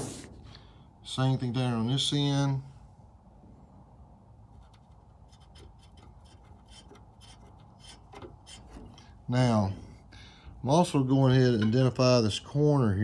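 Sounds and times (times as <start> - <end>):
low steady hum: 0.0 - 13.0
marker scratching on metal: 4.5 - 9.2.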